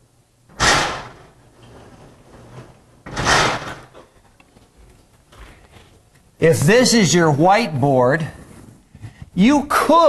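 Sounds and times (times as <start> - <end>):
blackboard panels sliding bangs: 0.5 - 4.2.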